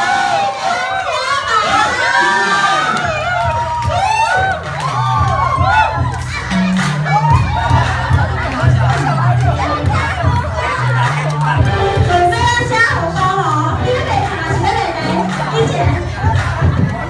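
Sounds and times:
crowd cheering and shouting: 0.0s - 17.0s
background music: 1.7s - 17.0s.

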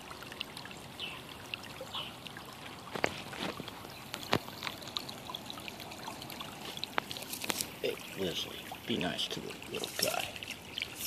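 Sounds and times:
stream water trickling: 0.0s - 11.0s.

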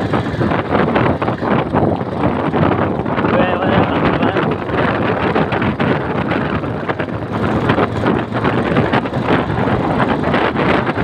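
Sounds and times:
motorcycle engine accelerating: 0.0s - 11.0s
wind buffeting microphone: 0.0s - 11.0s.

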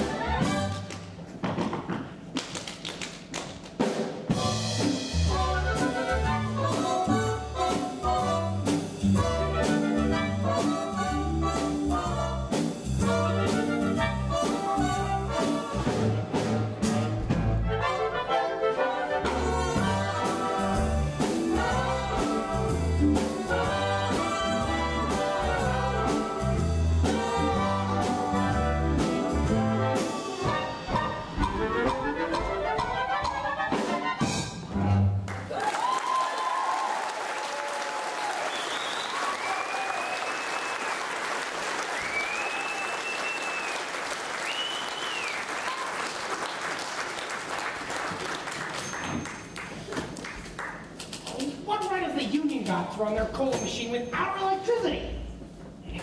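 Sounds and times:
big band playing jazz: 0.0s - 35.5s
audience applauding and whooping: 35.3s - 51.5s.

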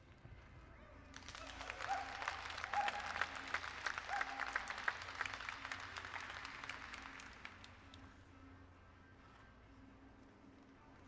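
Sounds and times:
spectators clapping: 1.1s - 8.0s.

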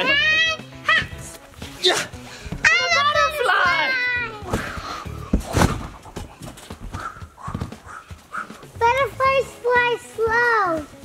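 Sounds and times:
running footsteps thumping: 0.9s - 3.3s, 3.9s - 11.0s
feet landing on trampoline: 2.4s - 3.1s, 3.7s - 9.0s.

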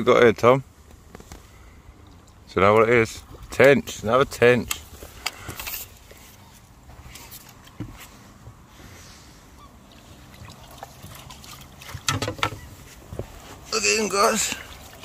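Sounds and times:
water splashing: 9.8s - 12.9s, 13.6s - 15.0s.

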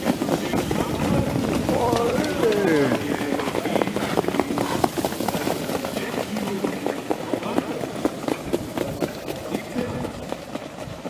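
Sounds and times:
horse hoofbeats on sand: 0.0s - 11.0s
voices talking: 0.1s - 10.4s.

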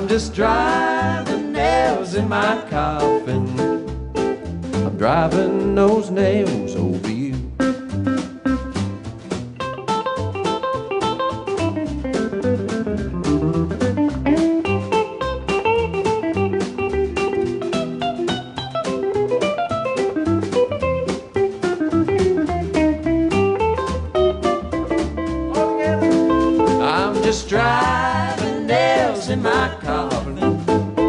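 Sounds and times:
drums: 0.0s - 31.0s
strummed acoustic guitar: 0.0s - 31.0s
upright bass: 0.0s - 31.0s
guitar single-note lead: 20.8s - 27.0s.

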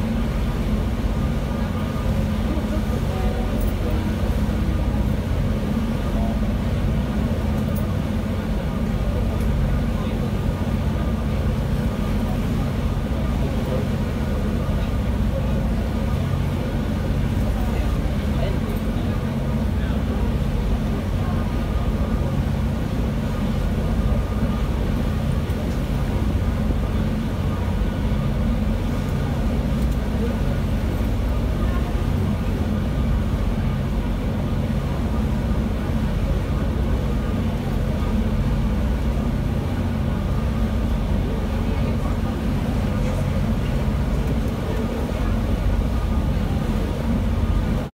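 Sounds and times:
ferry engines droning: 0.0s - 47.9s.

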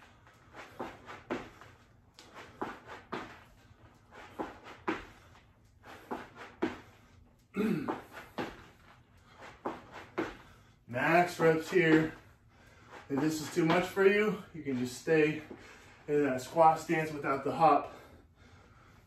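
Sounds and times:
feet thudding on rubber mat: 0.0s - 15.8s
person grunting: 7.5s - 8.0s.

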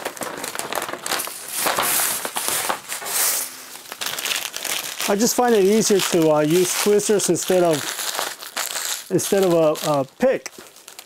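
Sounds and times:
vinyl sheet crinkling and crackling: 0.0s - 11.0s.

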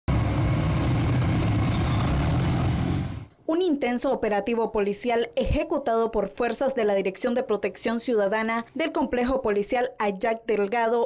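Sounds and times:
small motorcycle engine running: 0.1s - 3.3s.

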